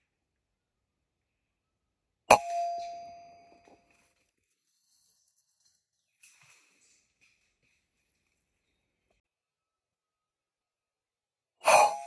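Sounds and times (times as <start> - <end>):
air rifle shot with metallic ring: 2.3 - 3.6.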